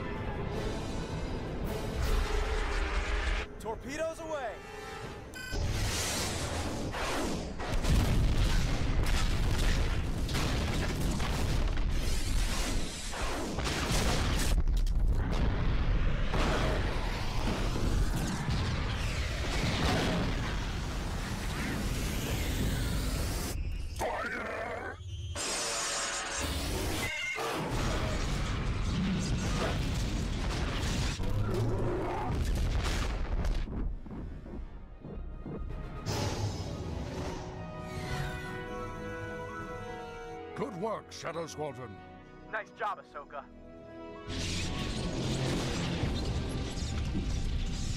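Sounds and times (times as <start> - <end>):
dramatic background music: 0.0 - 24.2, 25.3 - 47.9
explosions with deep booms: 5.6 - 22.4, 27.6 - 34.8, 44.8 - 47.9.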